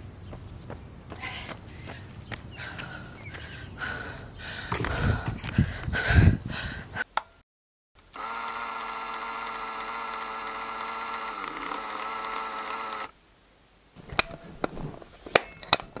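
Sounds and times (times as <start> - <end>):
sharp clicks: 8.0 - 13.1
small electric motor whine: 8.0 - 13.2.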